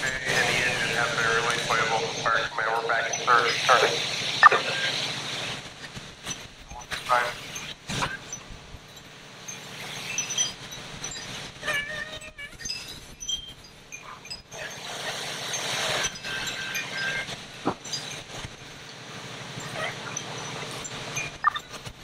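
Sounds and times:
engine humming: 0.0 - 22.0
brief tones: 21.2 - 21.7.

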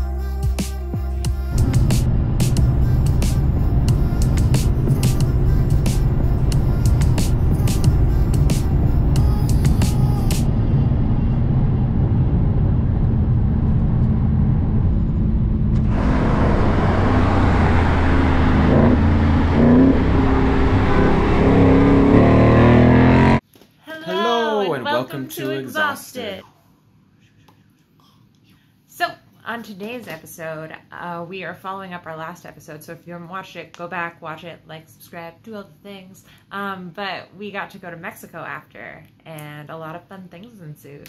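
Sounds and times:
background music: 0.0 - 10.6
car engine revving: 1.5 - 23.4
cars driving at speed: 1.6 - 9.2, 10.2 - 23.4.

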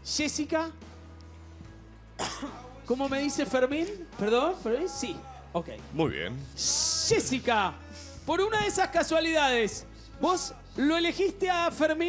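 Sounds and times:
quiet background music: 0.0 - 12.0
cough-like burst: 2.2 - 2.6.

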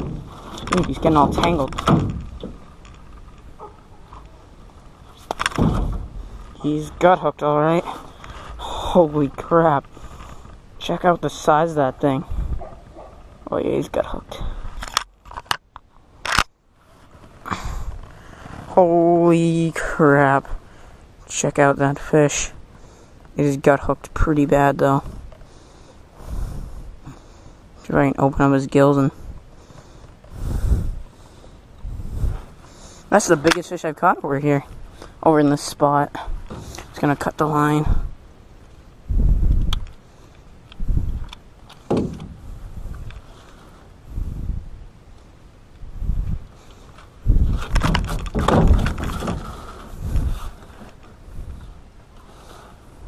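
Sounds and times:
person exhaling: 17.4 - 18.5.

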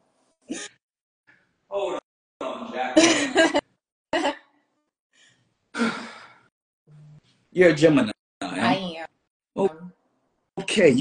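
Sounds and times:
person sighing: 5.7 - 6.4.

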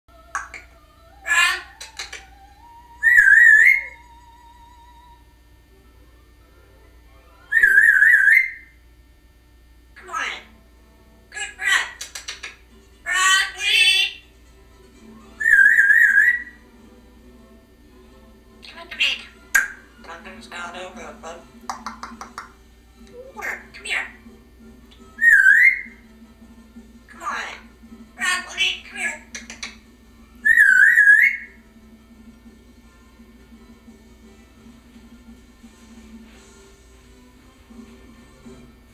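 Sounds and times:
parrot whistling: 0.3 - 5.2, 7.4 - 8.8, 15.3 - 16.6, 25.0 - 26.0, 30.4 - 31.6.

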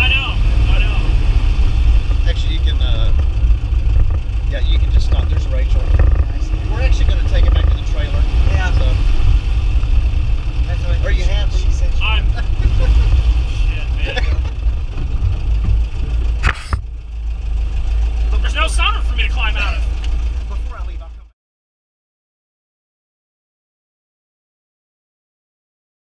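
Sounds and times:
voices: 0.0 - 1.3, 2.1 - 3.4, 4.1 - 9.1, 10.4 - 14.7, 18.2 - 21.3
car engine and road rumble: 0.0 - 21.4.

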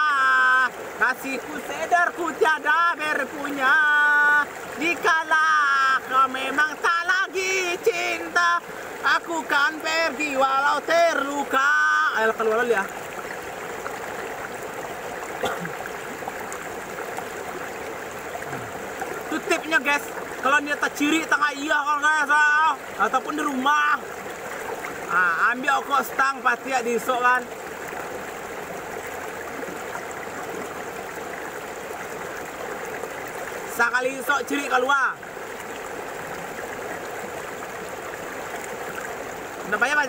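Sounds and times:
stream water rushing: 0.0 - 40.0.

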